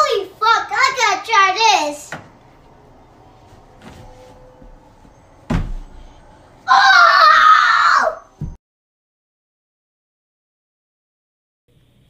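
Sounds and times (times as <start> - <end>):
child crying out: 6.7 - 8.3.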